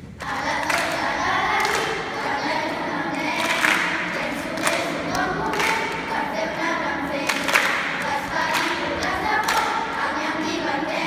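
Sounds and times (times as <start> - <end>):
children's choir singing: 0.0 - 11.0
hand claps: 0.2 - 6.2, 7.2 - 9.9.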